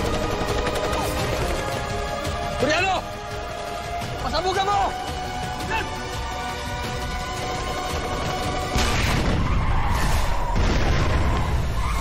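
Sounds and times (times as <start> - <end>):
tense background music: 0.0 - 12.0
loud explosion with rushing roar: 8.7 - 12.0.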